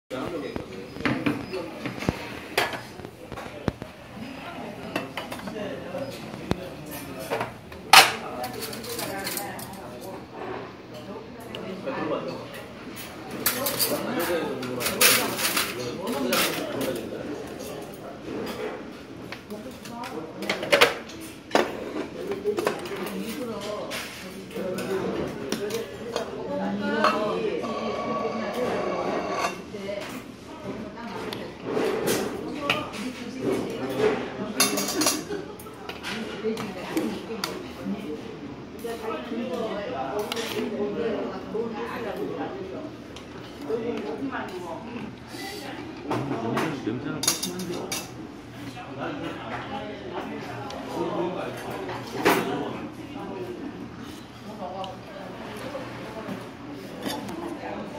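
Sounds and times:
dishes and spoons clinking: 0:04.9 - 0:09.8, 0:46.1 - 0:48.2
people talking: 0:22.0 - 0:57.9.

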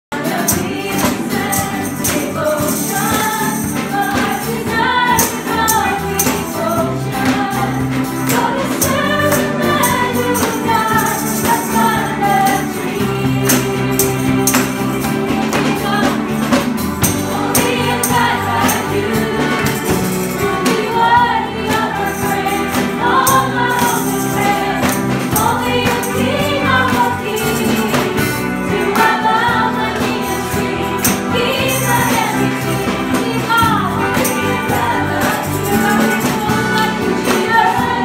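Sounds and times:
electric guitar: 0:00.1 - 0:38.0
group of singers: 0:00.1 - 0:38.0
tambourines jingling: 0:00.2 - 0:38.0.

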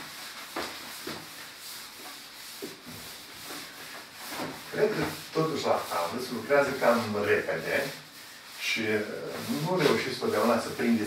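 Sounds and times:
eraser rubbing on blackboard: 0:00.0 - 0:11.0.

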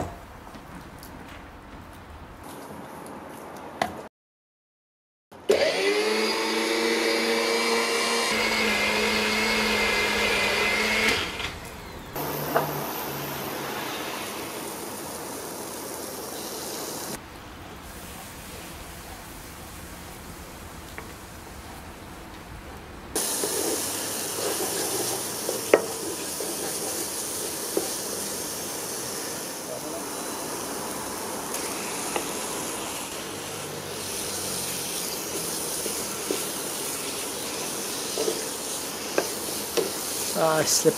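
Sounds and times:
electric spice grinder running: 0:05.5 - 0:17.2
curry paste sizzling in a pan: 0:12.2 - 0:17.2, 0:23.2 - 0:40.9.

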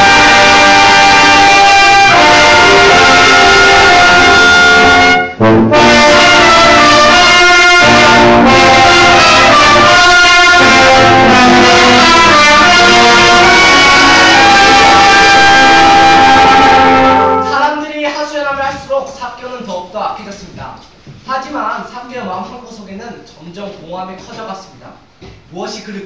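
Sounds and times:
brass band playing held notes: 0:00.0 - 0:17.8.

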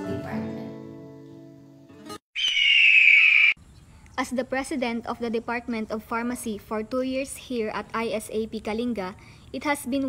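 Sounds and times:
bird of prey screech: 0:02.4 - 0:03.6.

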